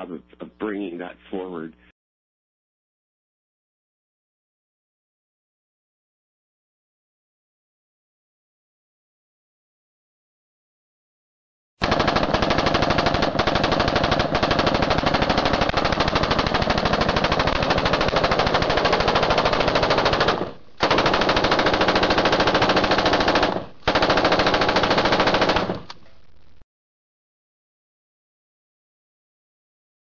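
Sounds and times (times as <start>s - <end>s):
rapid rattle of sharp bangs: 11.8s - 25.9s.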